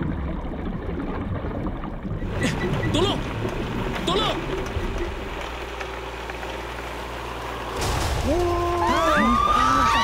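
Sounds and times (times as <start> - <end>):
boat engine rumbling: 0.0 - 10.0.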